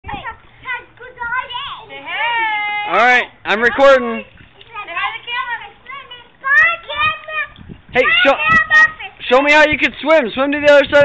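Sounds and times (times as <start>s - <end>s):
young children calling and chattering: 0.0s - 10.0s.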